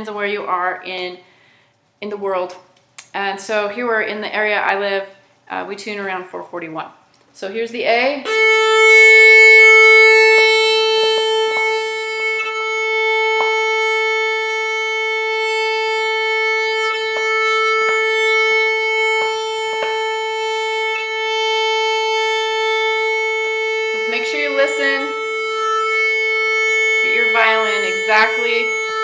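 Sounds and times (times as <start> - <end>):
violin long bowed note: 8.2 - 29.0.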